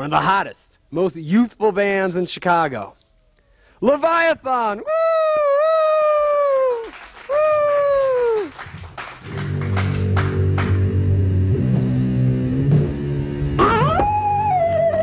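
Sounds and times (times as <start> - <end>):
rock band playing: 9.4 - 15.0.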